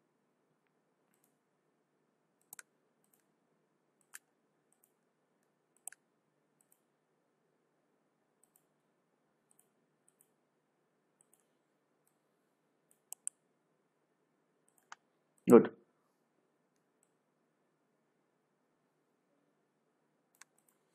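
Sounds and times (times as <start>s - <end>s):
computer mouse clicks: 1.1s - 1.4s, 2.4s - 3.3s, 4.0s - 6.0s, 6.6s - 6.9s, 8.4s - 8.8s, 9.5s - 10.4s, 11.2s - 12.2s, 12.9s - 13.4s, 14.7s - 15.0s, 20.3s - 20.9s.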